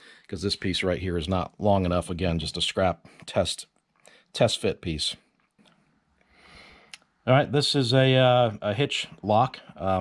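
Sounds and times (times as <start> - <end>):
man's voice: 0.3 - 3.6, 4.4 - 5.2, 7.3 - 10.0
soft intake of breath: 6.3 - 7.0.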